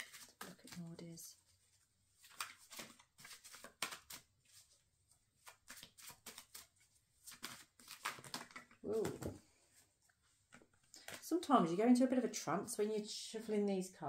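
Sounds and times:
cards shuffling: 0.0s - 9.5s, 10.3s - 11.2s.

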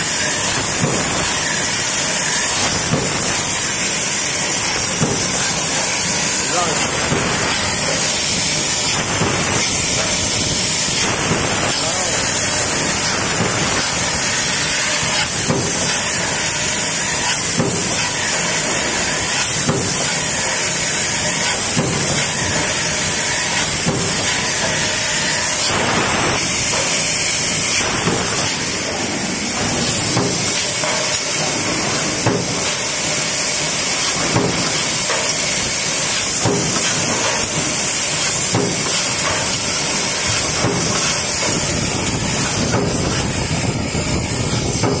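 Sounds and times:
machine hiss: 0.0s - 45.0s
stamping press cycling: 0.1s - 45.0s.

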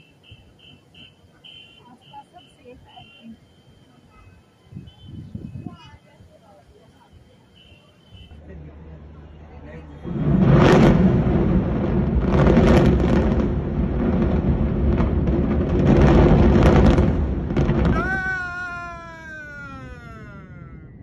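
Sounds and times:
building collapse rumble: 9.0s - 21.0s
long falling wail: 17.8s - 21.0s.

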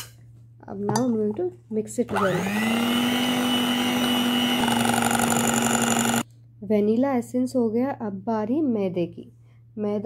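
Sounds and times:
electric hand mixer whisking: 2.1s - 6.2s.

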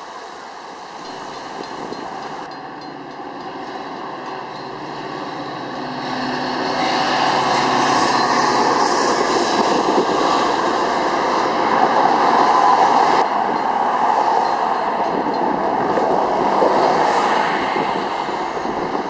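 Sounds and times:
train rolling across steel bridge: 0.0s - 19.0s.

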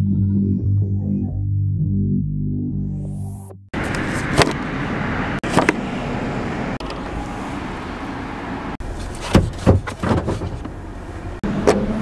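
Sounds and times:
synthesizer music: 0.0s - 3.7s.

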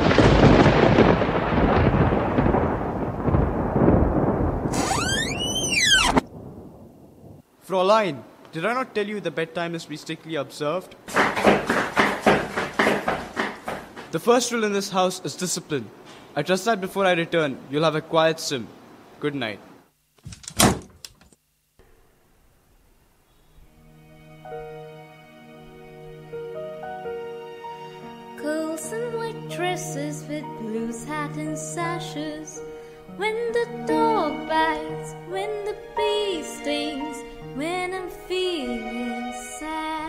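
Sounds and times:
thunder crash rumbling: 0.0s - 7.4s
door knocks: 11.1s - 14.2s, 20.3s - 21.0s
door shutting with a bang: 20.2s - 21.0s.

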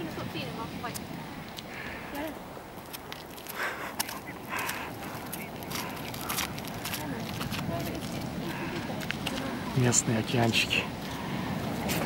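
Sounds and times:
bicycle tyres crunching sand: 0.0s - 12.0s
faint voices: 3.4s - 12.0s.

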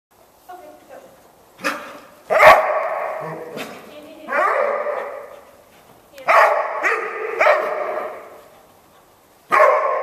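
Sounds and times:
dog barking: 1.6s - 3.6s, 4.3s - 5.4s, 6.2s - 8.4s, 9.5s - 10.0s.

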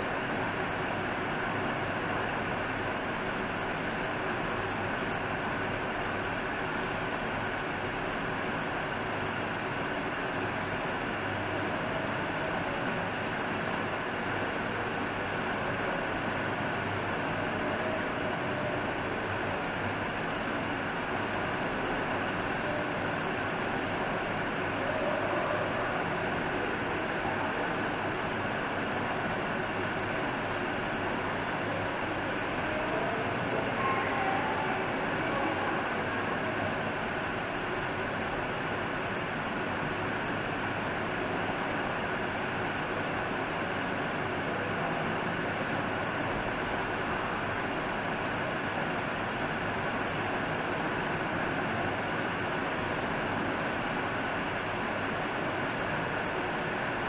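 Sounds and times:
steady background noise: 0.0s - 57.0s.

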